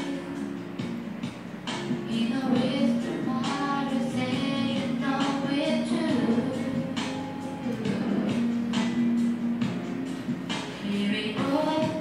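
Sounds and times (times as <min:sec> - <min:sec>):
instrumental backing track: 0:00.0 - 0:12.0
person singing pop song: 0:00.0 - 0:12.0.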